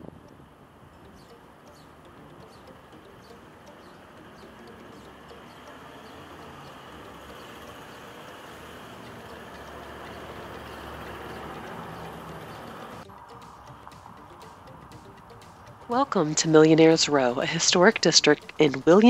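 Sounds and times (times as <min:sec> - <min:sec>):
vehicle traffic rumble: 0:00.0 - 0:19.0.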